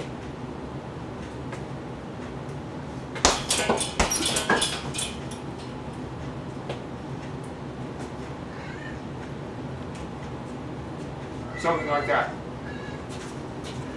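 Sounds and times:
sharp thumps: 3.2s - 5.4s
cat meowing: 8.5s - 9.0s, 11.5s - 13.1s.

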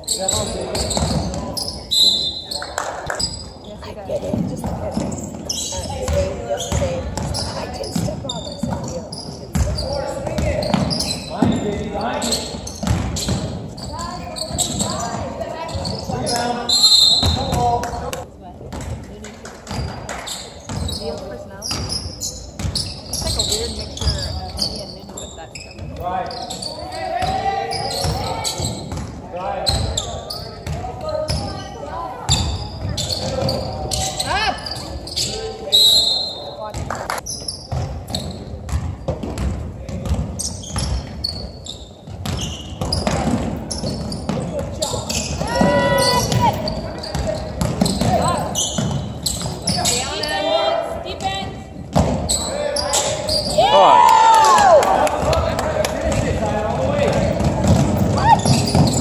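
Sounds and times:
basketball bouncing on wooden floor: 4.2s - 11.6s, 12.7s - 16.3s, 37.7s - 41.2s, 42.0s - 49.9s, 51.9s - 52.3s, 56.0s - 59.0s
echoing voices: 44.3s - 59.0s.

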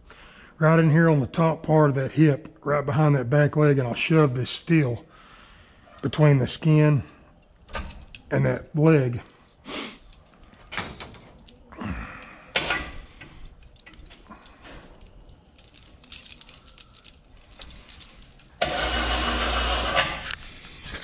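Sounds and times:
metal chain clinking: 2.8s - 21.0s.

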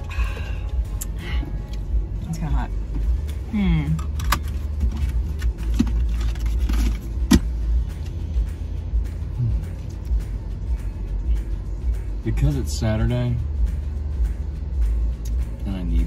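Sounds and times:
car cabin low rumble: 0.0s - 16.0s.

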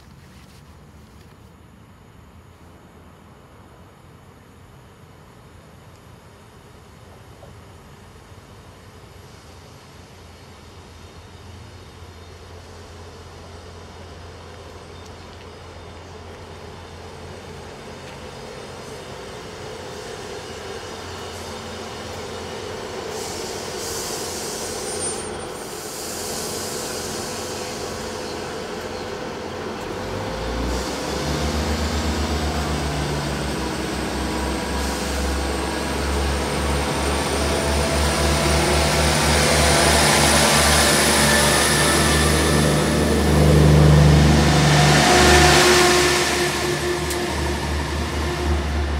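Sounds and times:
diesel engines droning and whining: 6.4s - 48.9s
train rail noise: 7.0s - 48.9s.

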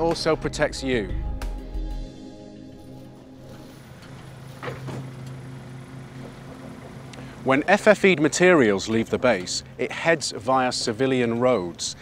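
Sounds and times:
low steady hum: 2.4s - 12.0s.

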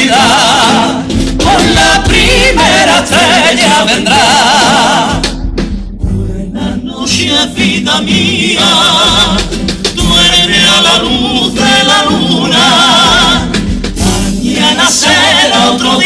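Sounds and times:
male chorus singing: 0.0s - 5.3s, 6.0s - 16.0s.

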